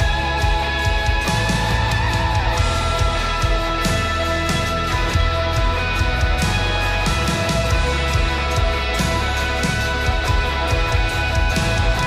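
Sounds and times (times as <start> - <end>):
guitar chords: 0.0 - 12.0
worship band music: 0.0 - 12.0.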